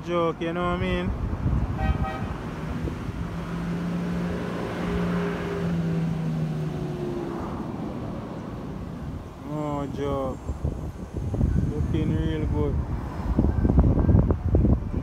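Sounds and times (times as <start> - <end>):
road noise: 0.0 - 15.0
vehicle engine drone: 0.0 - 15.0
wind buffeting microphone: 0.3 - 15.0.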